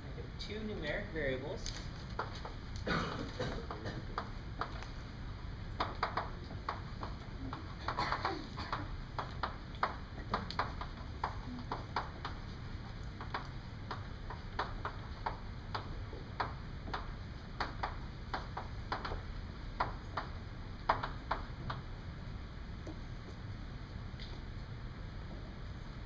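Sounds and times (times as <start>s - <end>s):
chalk tapping on blackboard: 3.6s - 4.9s, 5.8s - 19.2s, 19.8s - 21.8s.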